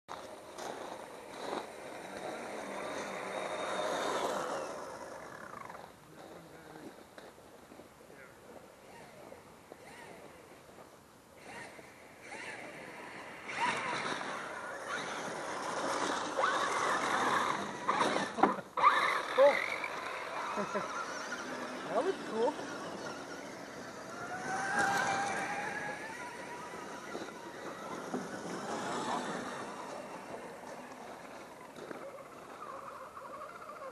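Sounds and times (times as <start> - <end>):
tyres crunching gravel: 0.1 - 8.6, 11.5 - 33.9
electric motors whining: 0.2 - 6.5, 8.8 - 33.9.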